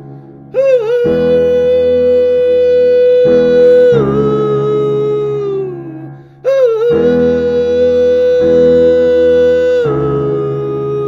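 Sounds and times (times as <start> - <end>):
electric keyboard chords: 0.0 - 11.0
man singing long note: 0.5 - 11.0.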